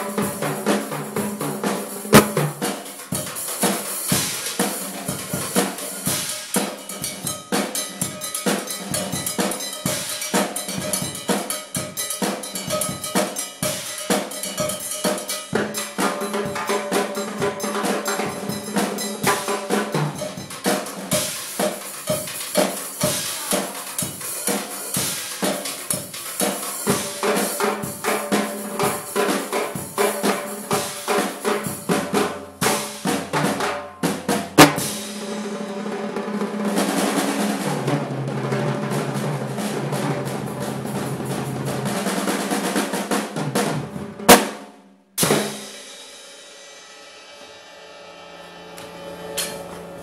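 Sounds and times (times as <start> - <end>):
drum kit groove: 0.0 - 47.5
metallic timbale strikes: 2.1 - 2.6, 34.5 - 35.4.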